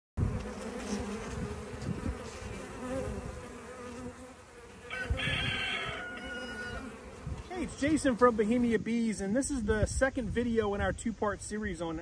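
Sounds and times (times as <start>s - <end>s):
bees buzzing: 0.2s - 9.2s.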